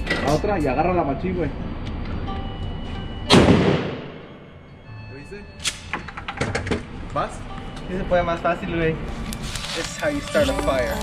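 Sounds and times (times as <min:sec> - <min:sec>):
gunshot: 0:03.3 - 0:04.3.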